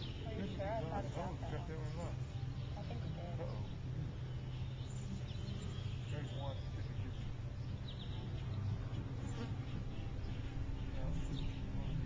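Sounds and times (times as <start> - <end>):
flies buzzing: 0.0 - 12.0.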